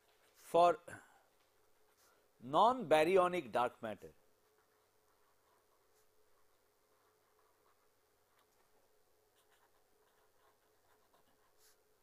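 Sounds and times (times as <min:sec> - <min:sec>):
marker pen scratching on paper: 0:01.4 - 0:02.4, 0:04.2 - 0:12.0.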